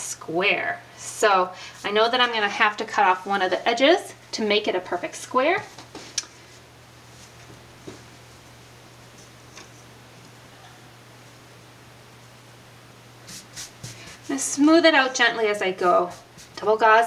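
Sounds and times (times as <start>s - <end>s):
steady low hum: 0.0s - 17.0s
fabric rustling and rubbing: 5.7s - 9.9s, 13.2s - 14.7s.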